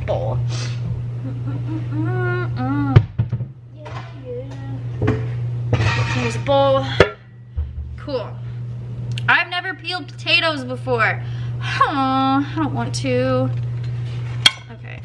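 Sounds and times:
steady low hum: 0.0s - 15.0s
metal bowl knocking on counter: 7.0s - 7.9s.

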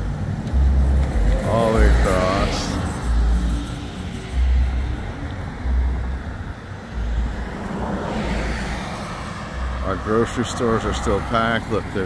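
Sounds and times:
low rumbles: 0.0s - 11.9s
car passing: 0.0s - 12.0s.

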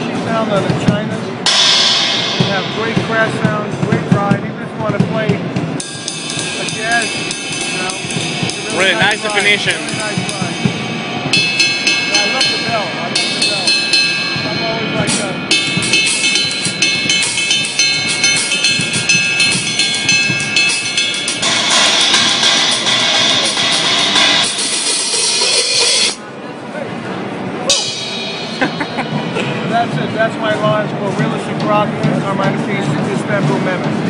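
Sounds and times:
ride cymbal struck with drumstick: 0.0s - 26.2s, 27.6s - 34.0s
crash cymbal wash: 1.5s - 4.4s, 5.5s - 26.2s, 27.7s - 31.3s.

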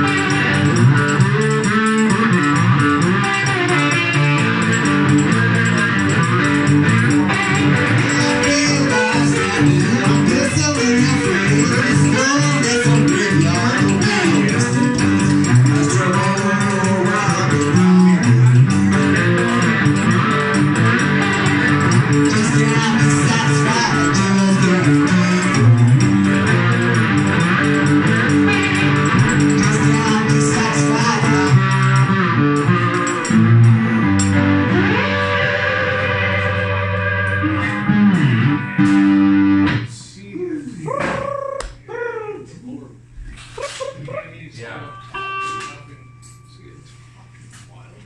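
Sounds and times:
man singing: 7.9s - 18.9s, 22.2s - 26.0s, 29.5s - 32.0s.

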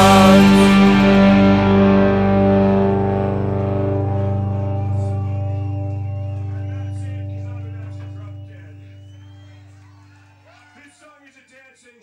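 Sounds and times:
cymbal wash: 0.0s - 9.7s
distorted electric guitars and bass: 0.0s - 10.1s.

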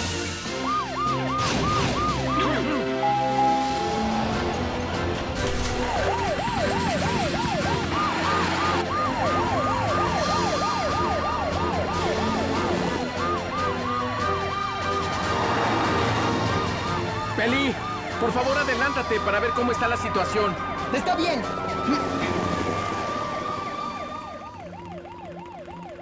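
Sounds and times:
background music: 0.0s - 26.0s
cartoon sirens yelping: 0.5s - 5.1s, 5.8s - 15.3s, 15.9s - 26.0s.

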